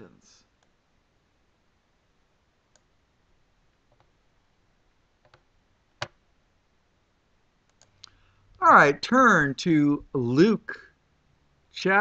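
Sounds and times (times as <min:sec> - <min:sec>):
faint click: 0:07.6 - 0:08.2.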